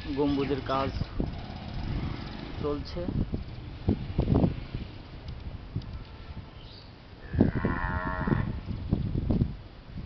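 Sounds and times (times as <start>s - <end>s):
drawn-out animal call: 7.2s - 8.6s.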